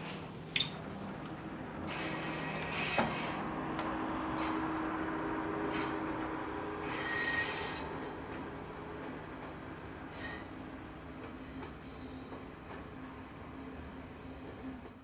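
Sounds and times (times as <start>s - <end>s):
passenger train rolling past: 0.0s - 15.0s
high wheel squeals: 1.9s - 3.6s, 5.6s - 6.2s, 6.8s - 8.2s, 10.1s - 10.6s.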